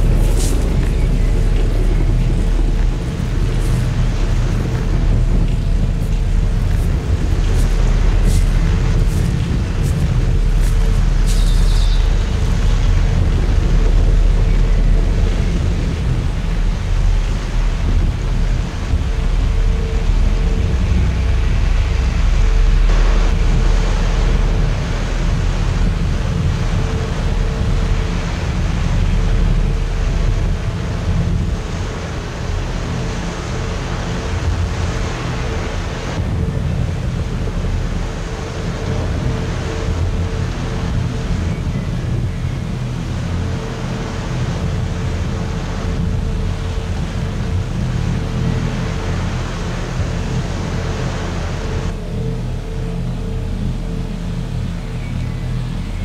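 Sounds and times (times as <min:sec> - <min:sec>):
experimental drone music: 0:00.0 - 0:56.0.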